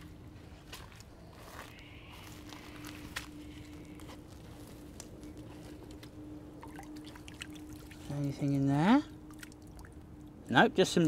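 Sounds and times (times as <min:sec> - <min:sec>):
faint steady hum: 0:00.0 - 0:11.0
rustling through wet grass: 0:00.6 - 0:08.2.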